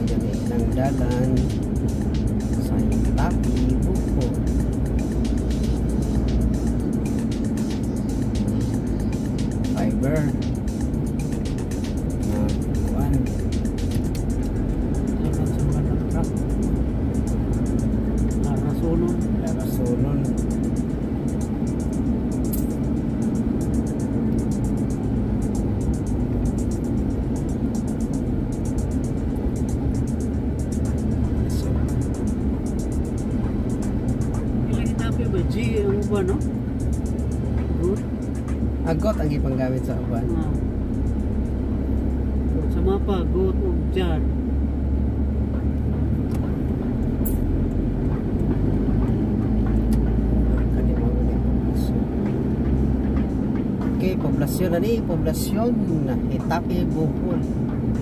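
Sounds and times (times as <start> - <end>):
background music: 0.0 - 58.0
car engine and road noise: 0.0 - 58.0.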